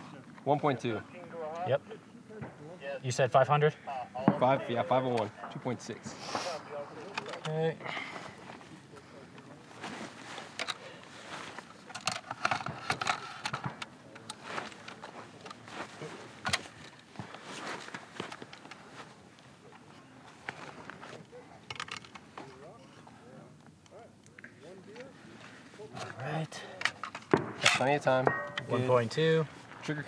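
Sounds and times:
rifle handling clicks and knocks: 7.1s - 7.6s, 10.2s - 19.2s, 20.4s - 22.7s, 26.0s - 28.8s.

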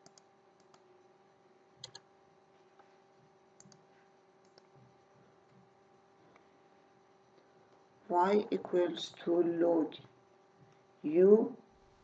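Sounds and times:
computer mouse clicks: 0.0s - 0.9s, 1.8s - 2.1s, 3.6s - 4.8s
faint steady hum: 0.0s - 12.0s.

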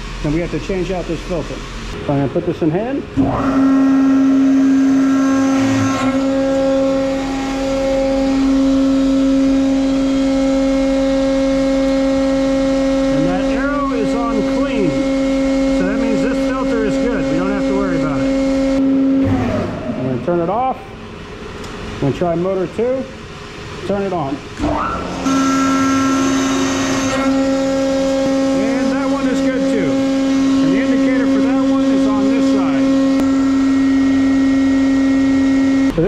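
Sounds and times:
hydraulic pump motor humming: 0.0s - 36.0s.

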